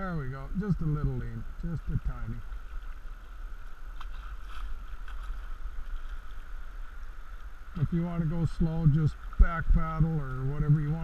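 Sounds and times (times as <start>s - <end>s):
river water rushing: 0.0s - 11.0s
paddle splashes: 0.8s - 11.0s.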